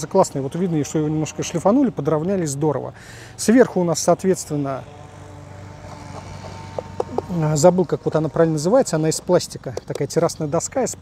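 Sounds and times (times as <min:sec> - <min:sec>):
distant aircraft engine drone: 0:00.0 - 0:11.0.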